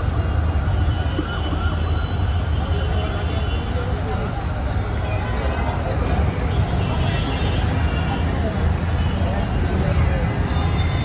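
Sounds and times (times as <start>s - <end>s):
people's voices: 0.0s - 11.0s
traffic rumble: 0.0s - 11.0s.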